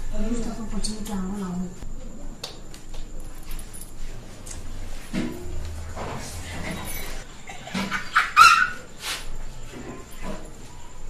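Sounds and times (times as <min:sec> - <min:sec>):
dog barking: 0:08.1 - 0:08.9.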